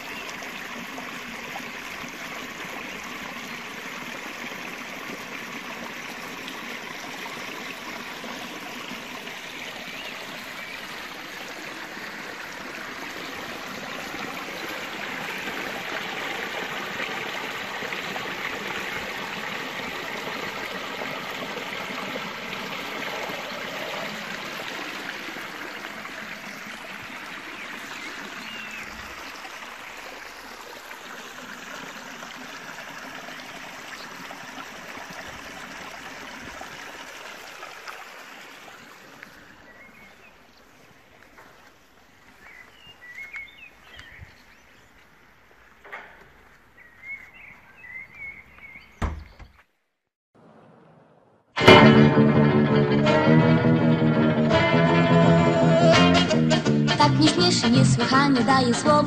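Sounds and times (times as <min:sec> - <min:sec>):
stream splashing over a weir: 0:00.0 - 0:39.8.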